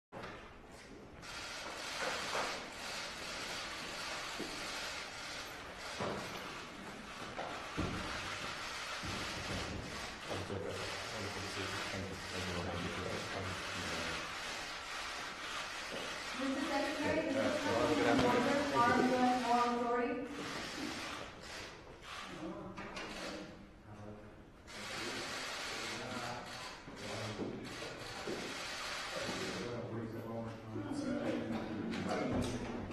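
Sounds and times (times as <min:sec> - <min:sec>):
footsteps on a wooden floor: 0:05.8 - 0:10.5.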